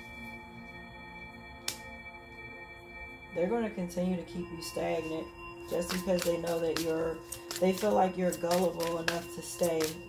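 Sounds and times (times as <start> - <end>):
ambient music with ringing tones: 0.0 - 10.0.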